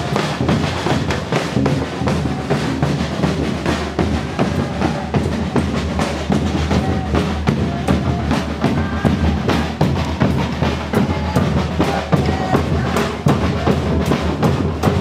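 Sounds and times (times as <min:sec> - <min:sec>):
bass drums beating: 0:00.0 - 0:15.0
snare drum: 0:00.0 - 0:15.0.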